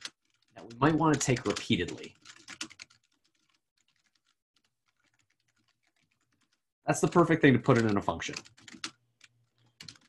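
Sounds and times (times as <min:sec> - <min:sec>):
computer keyboard typing: 0:00.0 - 0:10.0.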